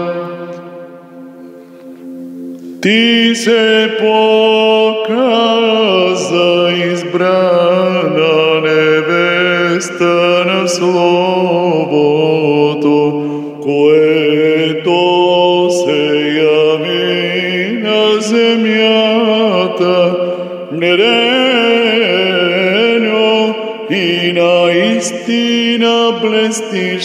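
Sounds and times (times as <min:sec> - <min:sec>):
man chanting a hymn: 0:00.0 - 0:00.8, 0:02.8 - 0:27.0.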